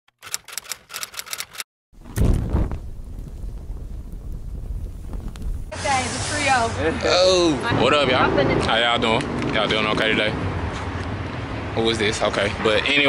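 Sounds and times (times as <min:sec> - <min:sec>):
rapid sharp clicks: 0:00.1 - 0:01.7
loud deep hit: 0:02.0 - 0:05.8
steady low rumble: 0:02.0 - 0:06.8
outdoor street noise: 0:05.7 - 0:13.0.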